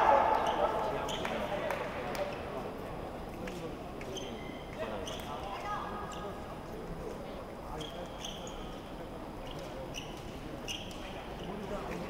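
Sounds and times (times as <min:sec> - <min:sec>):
crowd chatter: 0:00.0 - 0:12.0
shoe squeaks: 0:04.1 - 0:05.4, 0:07.7 - 0:08.8, 0:09.4 - 0:11.6.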